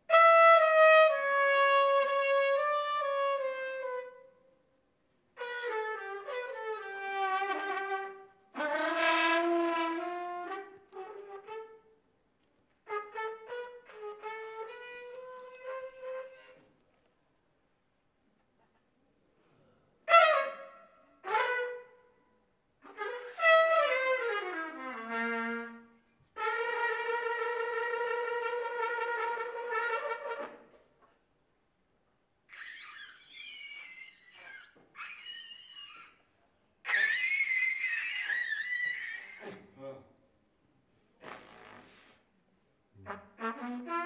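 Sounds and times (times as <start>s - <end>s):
trumpet improvising: 0.1s - 4.3s, 5.4s - 12.0s, 12.8s - 16.7s, 20.1s - 22.0s, 22.8s - 30.7s, 32.5s - 36.2s, 36.8s - 39.6s, 41.2s - 42.2s.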